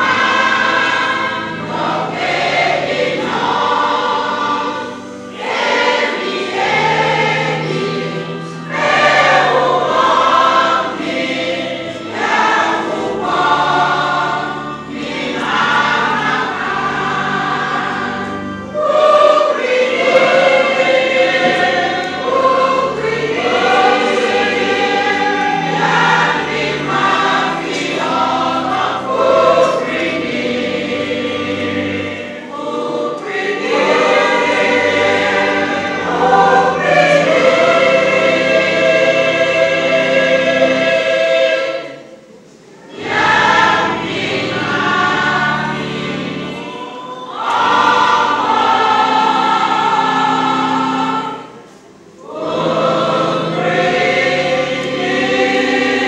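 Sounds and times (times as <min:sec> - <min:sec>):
choir singing a hymn: 0:00.0 - 0:56.0.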